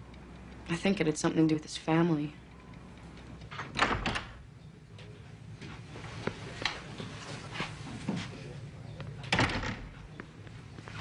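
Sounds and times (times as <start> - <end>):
door clattering and thumping: 3.5 - 4.5, 9.3 - 10.1.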